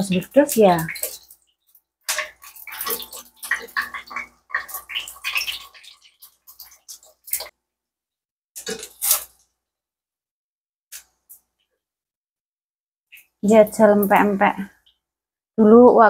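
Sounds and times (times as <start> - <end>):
fish cakes frying in hot oil: 0.0 - 7.6
oil spattering and popping: 0.0 - 7.6, 8.6 - 9.5.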